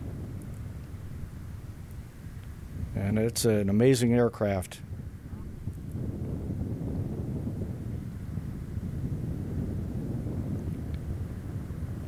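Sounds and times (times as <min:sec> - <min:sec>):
distant jet engines rumbling: 0:00.0 - 0:12.0
wind on microphone: 0:00.0 - 0:12.0.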